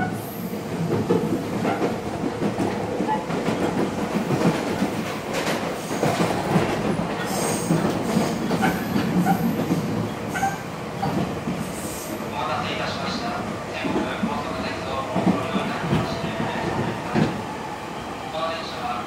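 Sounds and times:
train car rumble: 0.0s - 19.0s
rail-joint clatter: 0.9s - 11.6s.

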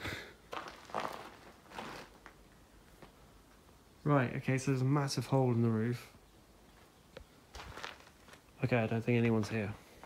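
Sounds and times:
person breathing: 0.0s - 0.4s
soft footsteps in stone chamber: 0.5s - 3.2s.

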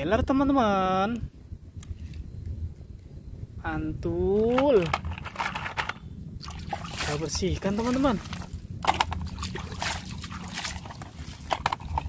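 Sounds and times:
water splashing and sloshing: 5.0s - 12.0s.

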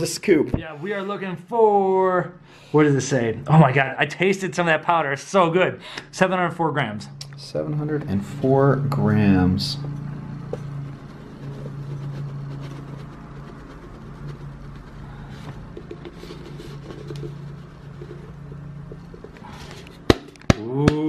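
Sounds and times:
steady low hum: 5.0s - 20.8s.

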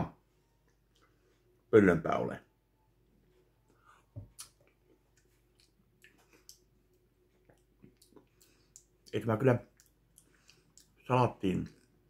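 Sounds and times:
lip smacks and mouth clicks: 4.3s - 11.0s.

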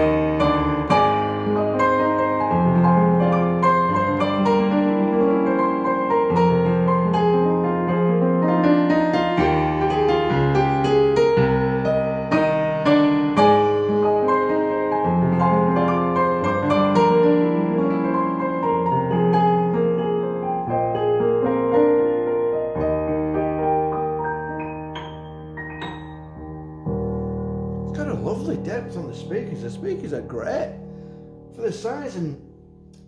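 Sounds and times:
slow piano piece: 0.0s - 33.0s.

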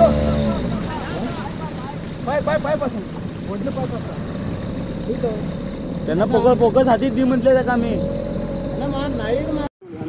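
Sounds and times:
boat motor running: 0.0s - 9.7s
men shouting urgently: 0.0s - 9.7s.

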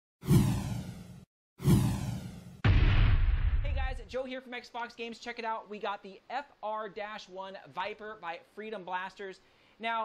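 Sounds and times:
whoosh sound effects: 0.2s - 3.9s
low thud: 0.4s - 4.1s.

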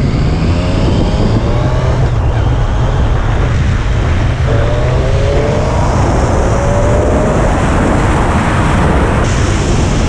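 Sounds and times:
motorcycle engine: 0.0s - 9.7s
wind rushing over microphone: 0.0s - 10.0s.

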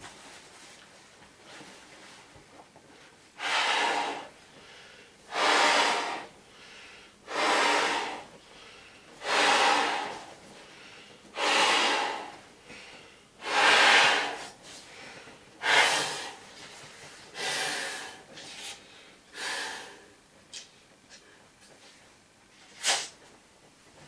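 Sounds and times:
person breathing heavily: 3.4s - 16.5s, 17.3s - 20.1s.

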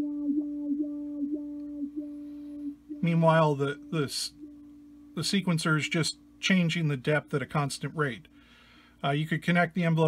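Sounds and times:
electric guitar note with modulation: 0.0s - 6.4s.

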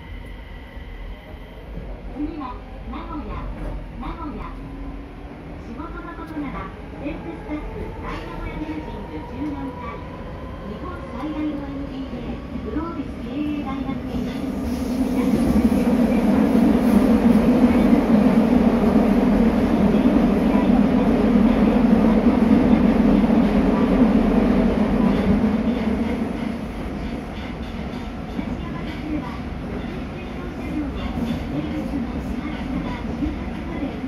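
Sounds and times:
subway train wheels and motors rumbling: 0.0s - 34.0s.

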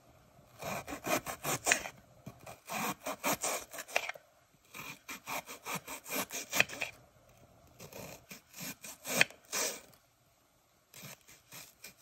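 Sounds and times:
knife slicing onion on cutting board: 0.6s - 4.2s, 4.8s - 7.0s, 7.8s - 9.8s.

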